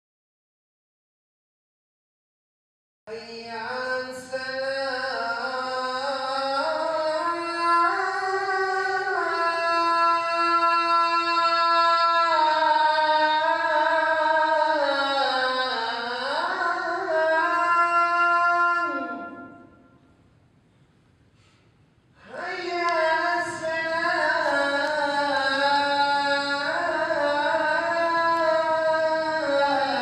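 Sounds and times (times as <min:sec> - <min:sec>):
man chanting call to prayer: 0:03.1 - 0:19.8, 0:22.2 - 0:30.0.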